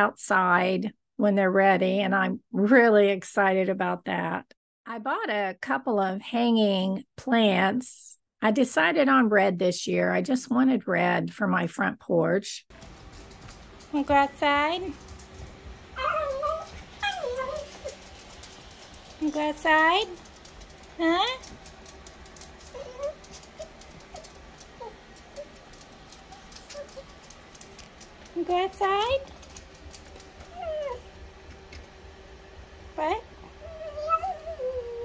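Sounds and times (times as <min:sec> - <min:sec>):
dog whining: 0:15.9 - 0:18.2, 0:22.6 - 0:27.4, 0:30.4 - 0:31.2, 0:33.6 - 0:35.0.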